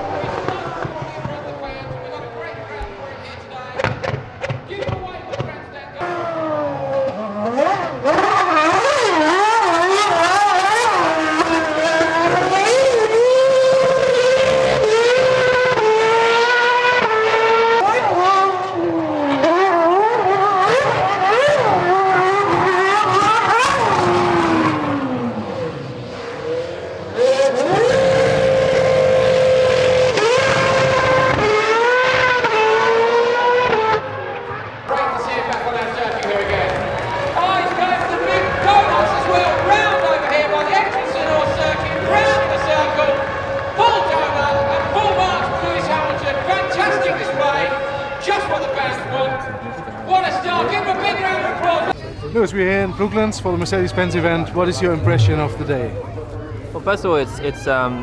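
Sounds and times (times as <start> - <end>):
racing car engine at high revs: 0.0 - 52.0, 53.1 - 57.0.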